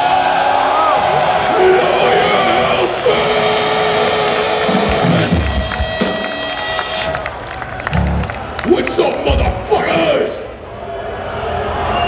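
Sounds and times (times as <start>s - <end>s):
audience cheering: 0.0s - 12.0s.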